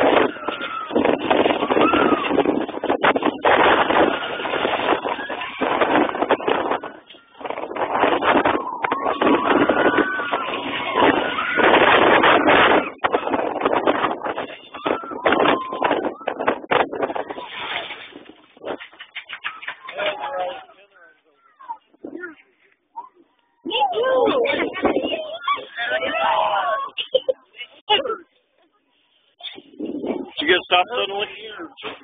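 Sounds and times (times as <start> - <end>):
roller coaster rumble: 0.0 - 20.7
wind rushing over microphone: 0.0 - 20.7, 21.7 - 22.4, 23.6 - 26.3, 29.4 - 32.0.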